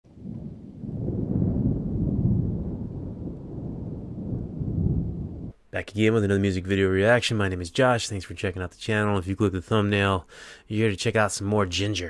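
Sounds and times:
thunder rumbling: 0.0s - 5.6s.

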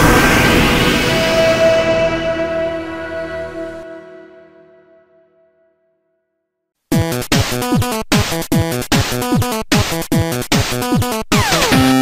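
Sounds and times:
falling synth sweep: 0.0s - 5.3s
kick drum beat: 6.9s - 11.2s.

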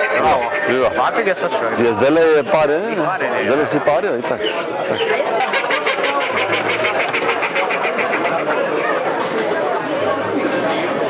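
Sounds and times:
murmur of crowd chatter: 0.0s - 11.0s.

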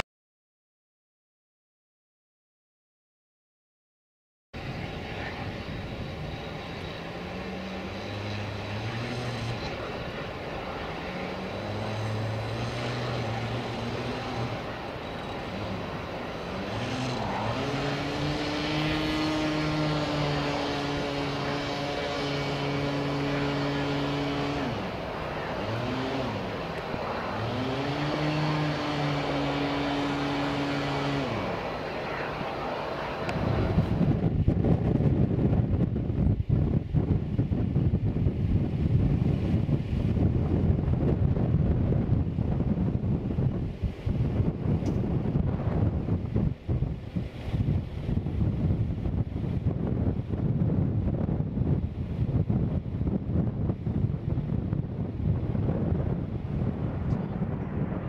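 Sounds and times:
aircraft engine humming: 4.6s - 58.0s
wind buffeting microphone: 4.6s - 58.0s.

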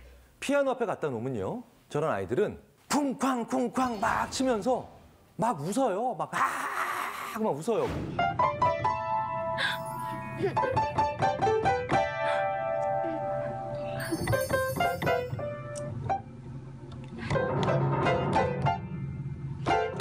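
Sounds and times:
laughter: 10.4s - 11.0s.

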